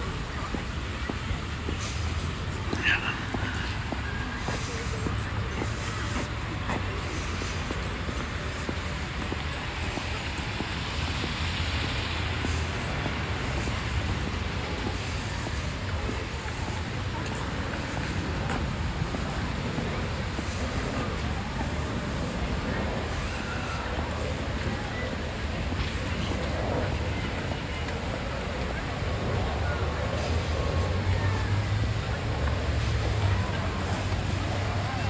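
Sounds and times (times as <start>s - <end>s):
road traffic rumble: 0.0s - 35.0s.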